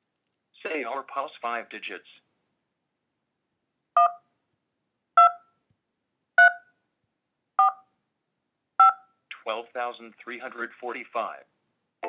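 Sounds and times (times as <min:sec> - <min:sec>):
touch-tone keypad beeps: 0:04.0 - 0:04.2, 0:05.2 - 0:05.4, 0:06.4 - 0:06.6, 0:07.6 - 0:07.8, 0:08.8 - 0:09.0.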